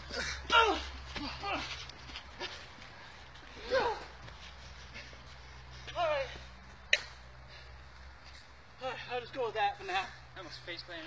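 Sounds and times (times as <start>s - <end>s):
men's wordless cries: 0.0s - 2.6s, 3.5s - 4.3s.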